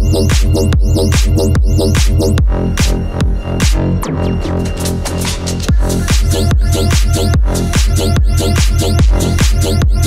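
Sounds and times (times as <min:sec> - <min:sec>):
hard kick drum: 0:00.0 - 0:03.9, 0:05.7 - 0:10.0
electronic dance music: 0:00.0 - 0:10.0
fast repeating synth stabs: 0:00.0 - 0:10.0
heavy bass: 0:00.0 - 0:10.0.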